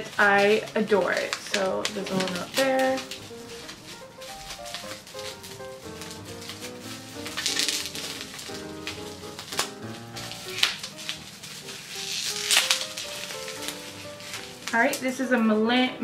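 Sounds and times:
plastic bag crinkling: 0:00.0 - 0:15.9
background music: 0:00.0 - 0:16.0.

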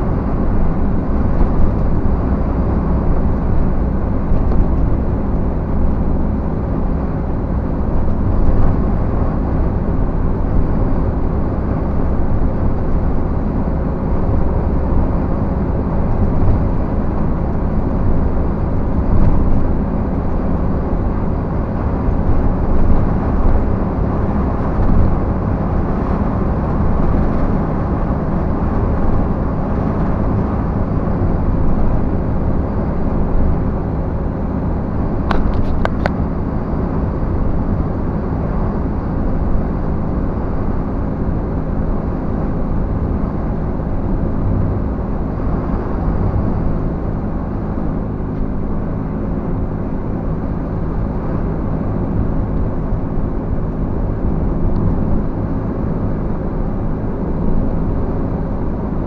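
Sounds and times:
low engine hum: 0:00.0 - 0:59.0
tyre and road noise: 0:00.0 - 0:59.0.

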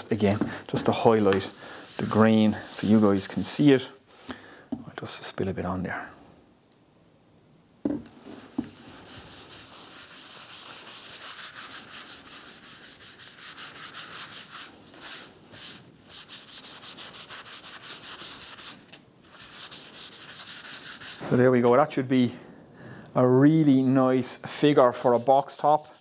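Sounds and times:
cloth rubbing on wood: 0:00.2 - 0:03.7, 0:08.2 - 0:21.5.

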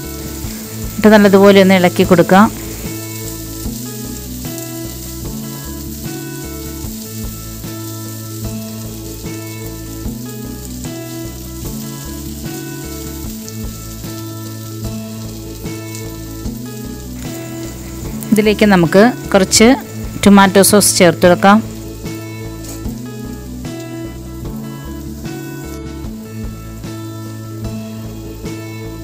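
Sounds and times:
background music with bass line: 0:00.0 - 0:29.0
food sizzling in a hot pan: 0:00.0 - 0:29.0.

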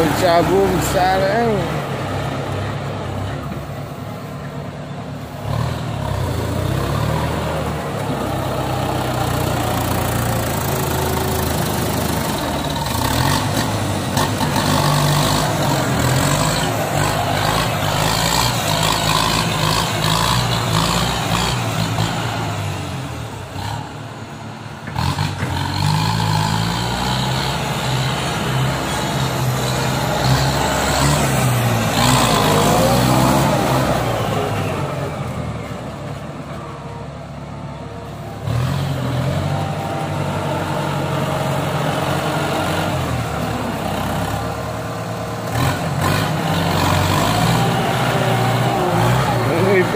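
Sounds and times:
tractor diesel engine under load: 0:00.0 - 0:49.9.

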